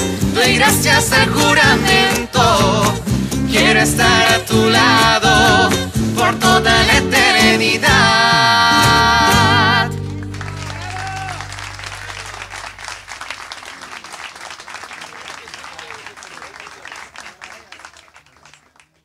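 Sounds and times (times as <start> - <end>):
band playing: 0.0 - 15.4
audience applauding: 9.3 - 19.0
voices calling out: 10.2 - 18.7.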